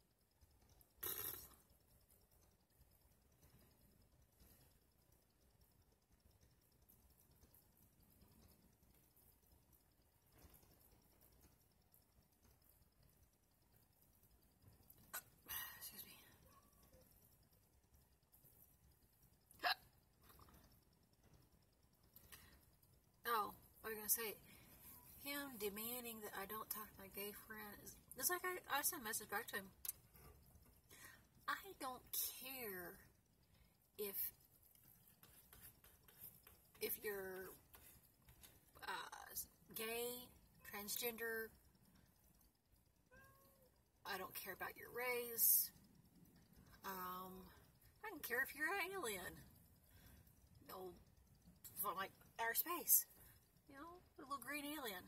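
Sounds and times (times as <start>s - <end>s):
person hiccuping: 1.0s - 1.6s, 19.6s - 19.8s.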